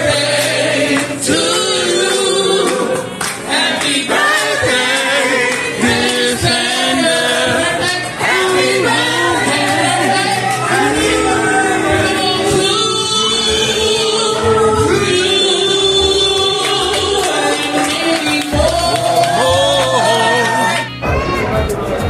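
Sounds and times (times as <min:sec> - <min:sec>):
group singing a birthday song: 0:00.0 - 0:20.5
backing music with bass note: 0:00.0 - 0:22.0.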